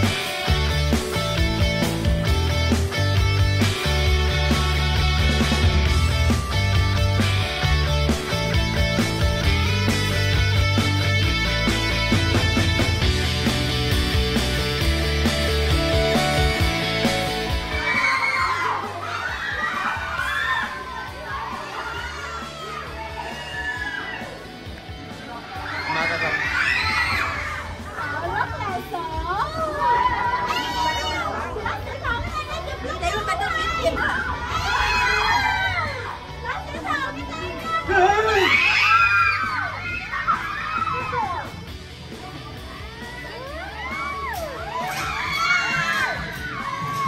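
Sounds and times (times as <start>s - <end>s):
children shouting excitedly: 17.4s - 47.0s.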